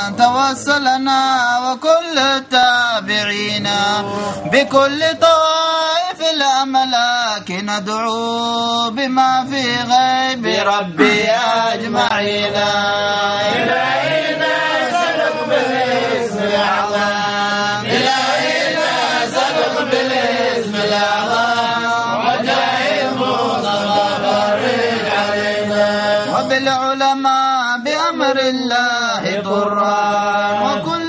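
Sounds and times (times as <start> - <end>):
men chanting devotional verses: 0.0 - 31.0.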